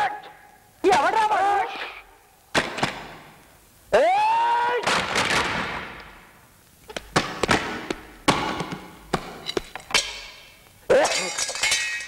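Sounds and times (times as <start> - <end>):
high scream: 3.9 - 4.8.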